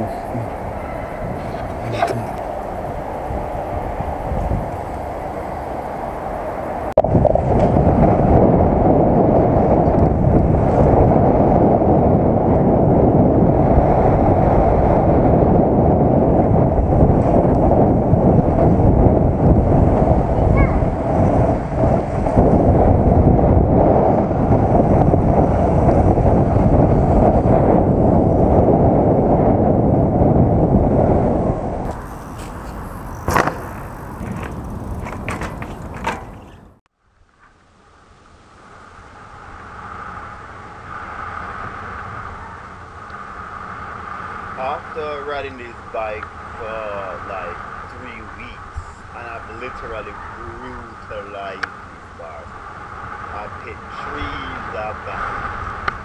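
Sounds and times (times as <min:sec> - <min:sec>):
wind buffeting microphone: 0:00.0 - 0:36.8, 0:39.7 - 0:56.0
bike riding rumble: 0:00.0 - 0:37.6, 0:39.0 - 0:56.0.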